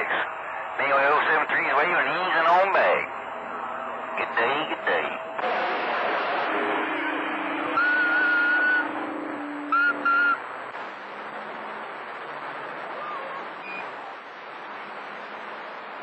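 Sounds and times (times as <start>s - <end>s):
radio static hiss: 0.0s - 3.1s, 4.1s - 16.0s
held whistle: 7.7s - 8.9s, 9.7s - 10.4s.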